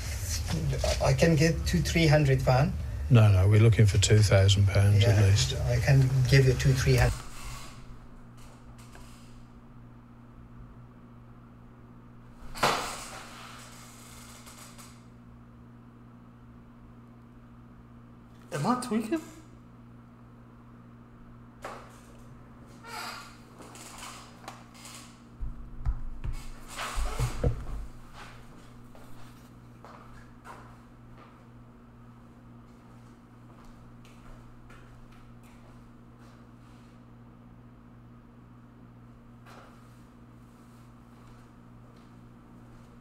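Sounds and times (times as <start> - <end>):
rush of noise: 0.0 - 7.2
low hum: 0.0 - 13.3
low electrical hum: 0.0 - 43.0.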